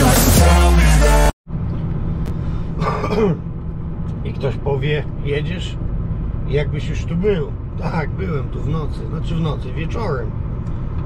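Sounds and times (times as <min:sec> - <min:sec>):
music: 0:00.0 - 0:01.4
lorry engine droning in cab: 0:00.0 - 0:11.0.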